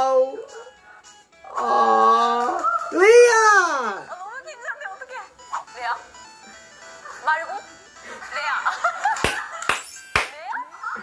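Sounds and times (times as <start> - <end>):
light jingly background music: 0.0 - 11.0
woman speaking: 4.1 - 6.1.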